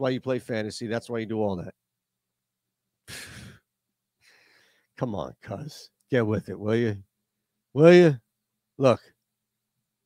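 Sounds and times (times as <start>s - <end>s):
man speaking: 0.0s - 1.7s, 5.0s - 7.0s, 7.8s - 8.2s, 8.8s - 9.1s
man exhaling breathily: 3.1s - 3.6s.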